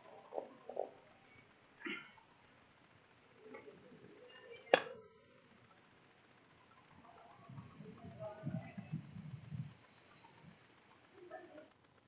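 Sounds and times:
muffled distant voices greeting: 0:03.2 - 0:11.8.

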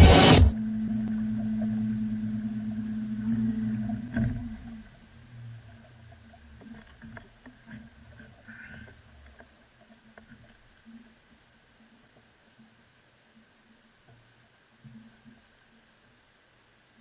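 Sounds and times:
boat motor humming: 0:00.0 - 0:07.0
water sounds: 0:00.0 - 0:17.0
faint small clicks: 0:05.7 - 0:11.2, 0:13.4 - 0:15.9.

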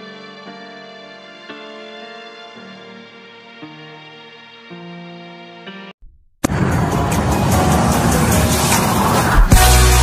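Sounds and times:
rushing sound effect: 0:06.4 - 0:10.0.

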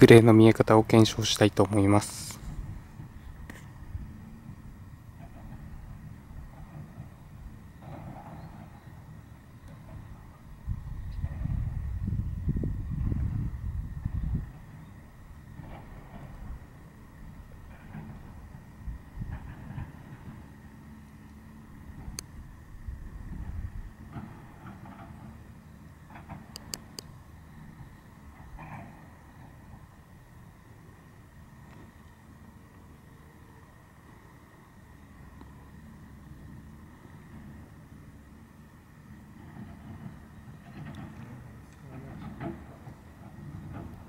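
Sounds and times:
wind buffeting microphone: 0:00.0 - 0:20.8, 0:21.5 - 0:25.5.

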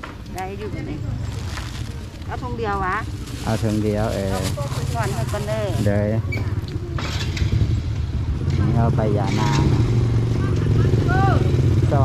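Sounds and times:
voices: 0:00.3 - 0:07.4, 0:08.3 - 0:12.0
small motorcycle engine droning: 0:03.2 - 0:12.0.

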